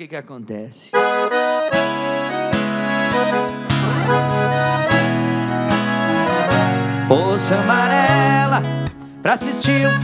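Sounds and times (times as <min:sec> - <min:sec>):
piano accordion playing chords: 0:00.9 - 0:10.0
steady bass notes: 0:01.0 - 0:09.0
acoustic guitar strummed: 0:01.0 - 0:10.0
unaccompanied vocal line: 0:05.7 - 0:10.0.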